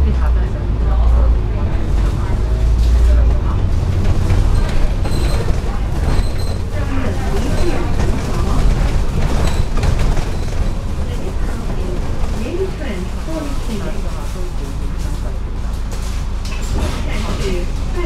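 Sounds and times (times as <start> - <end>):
voices talking: 0.0 - 15.6
bus engine and road rumble: 0.0 - 18.0.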